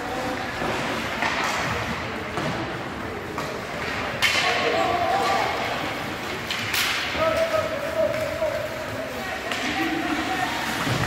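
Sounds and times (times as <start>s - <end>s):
hockey puck crack: 0.0s - 11.0s.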